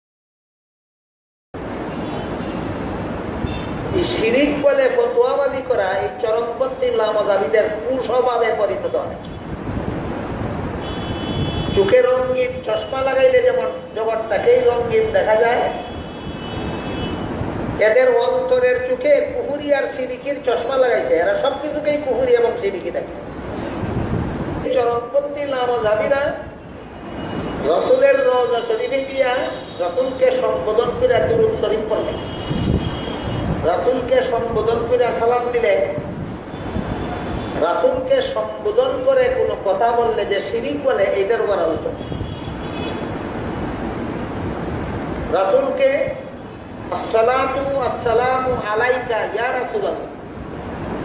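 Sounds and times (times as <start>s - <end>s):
low background noise: 1.6s - 51.0s
man talking: 3.9s - 9.2s, 11.7s - 15.8s, 17.8s - 23.2s, 24.6s - 26.5s, 27.6s - 32.2s, 33.6s - 36.1s, 37.6s - 42.0s, 45.3s - 46.3s, 46.9s - 50.2s.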